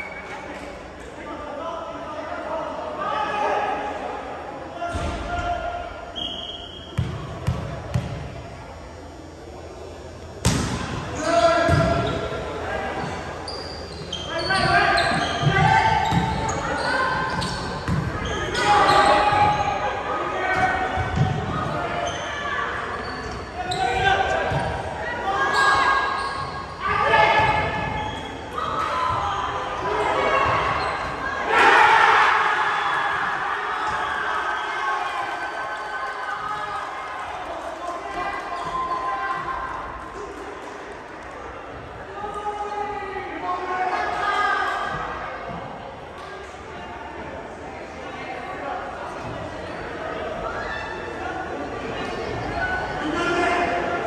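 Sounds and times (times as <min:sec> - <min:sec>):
volleyball being hit: 0:10.4 - 0:11.0
players shouting: 0:14.2 - 0:37.1.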